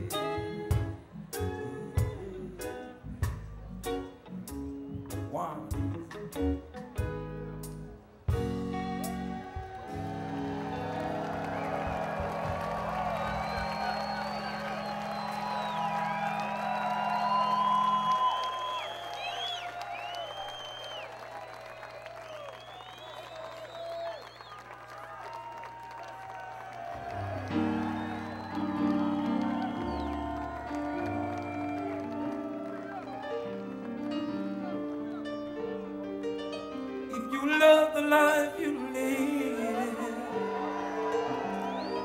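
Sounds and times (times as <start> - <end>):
live reggae band: 0.0 - 20.1, 27.1 - 42.0
crowd cheering and whooping: 8.7 - 35.8, 39.4 - 42.0.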